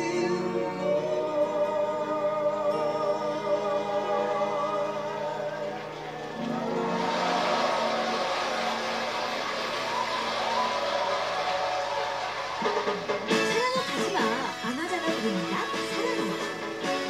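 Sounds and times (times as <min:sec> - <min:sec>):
audience applause: 0:05.8 - 0:13.4.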